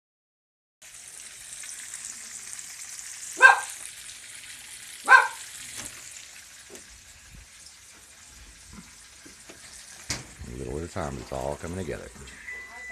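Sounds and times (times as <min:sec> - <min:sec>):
food sizzling in frying pan: 0:00.8 - 0:12.9
dog barking: 0:03.4 - 0:03.8, 0:05.0 - 0:05.5.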